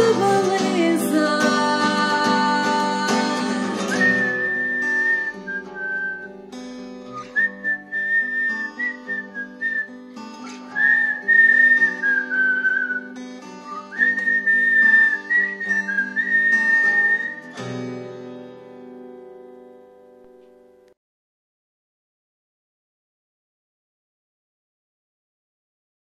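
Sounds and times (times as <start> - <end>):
acoustic guitar chords: 0.0 - 21.0
whistled melody: 3.7 - 6.4, 7.0 - 17.9.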